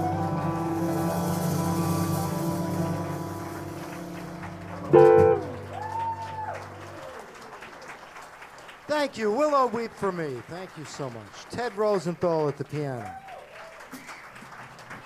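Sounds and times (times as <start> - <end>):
jazz quartet playing: 0.6 - 5.8
electric guitar figure: 4.9 - 5.7.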